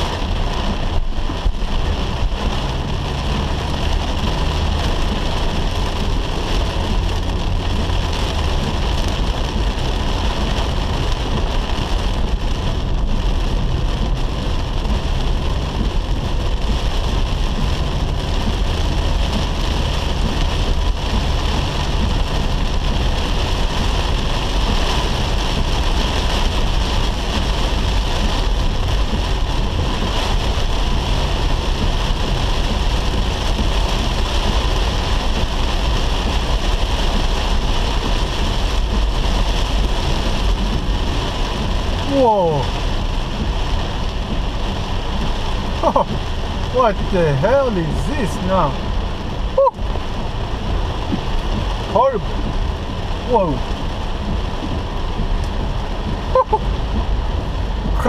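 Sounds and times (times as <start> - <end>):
car engine rumble: 0.0 - 58.0
heavy rain drumming on car roof: 0.0 - 58.0
tyres on wet road: 0.0 - 58.0.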